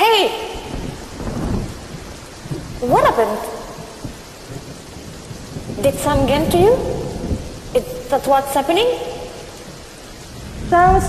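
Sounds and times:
heavy rain falling: 0:00.0 - 0:11.0
low rumble of thunder: 0:00.0 - 0:11.0.

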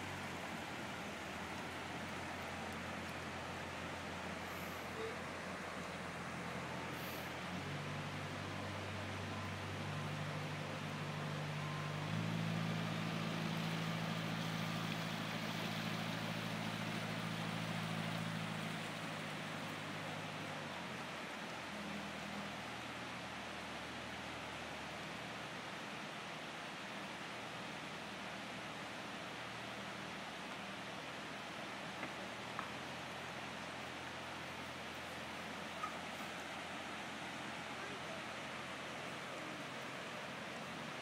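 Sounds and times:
background hiss: 0:00.0 - 0:41.0
boat diesel engine humming: 0:00.0 - 0:41.0.

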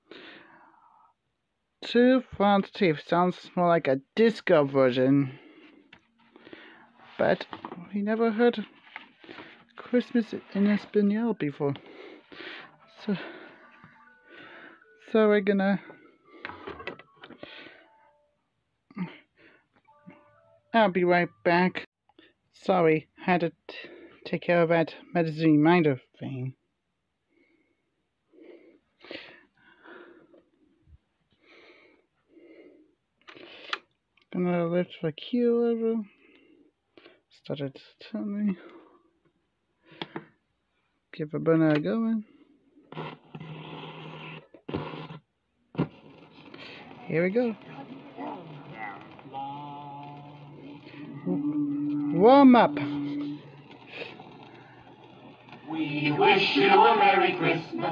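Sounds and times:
person breathing: 0:00.0 - 0:01.2, 0:05.3 - 0:07.2, 0:09.2 - 0:09.8, 0:11.8 - 0:15.0, 0:15.8 - 0:18.1, 0:19.0 - 0:19.8, 0:27.3 - 0:30.4, 0:31.3 - 0:33.8, 0:46.4 - 0:47.0
record player hum and hiss: 0:05.7 - 0:18.6, 0:42.8 - 0:57.9
record sleeve rustle: 0:08.6 - 0:11.0, 0:52.8 - 0:55.7.

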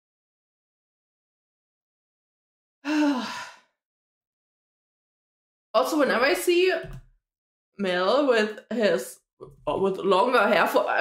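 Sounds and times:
woman sighing: 0:02.8 - 0:03.6.

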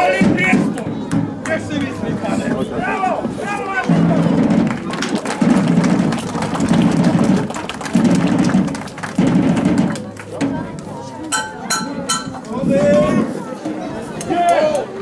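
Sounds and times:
marching drum rolls: 0:00.0 - 0:10.8.

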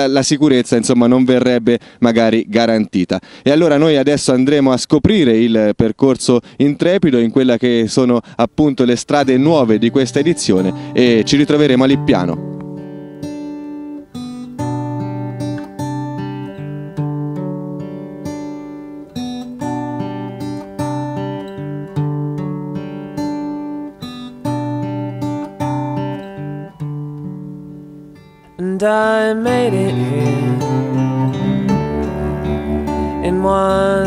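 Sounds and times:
plucked acoustic guitar: 0:08.7 - 0:34.0
man singing: 0:28.6 - 0:34.0.

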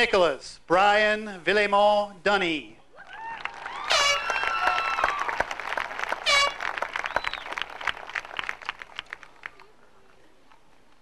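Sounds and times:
high-pitched whoops: 0:03.0 - 0:05.4
audience clapping and cheering: 0:03.0 - 0:09.8.

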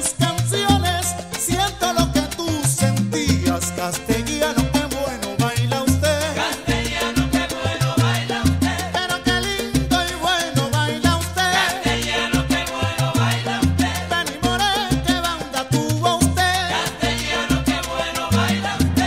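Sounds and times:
salsa music: 0:00.0 - 0:19.0.

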